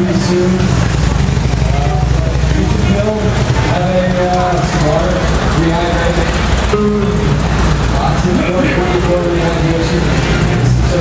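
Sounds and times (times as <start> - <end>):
people talking: 0.0 - 0.8, 1.5 - 11.0.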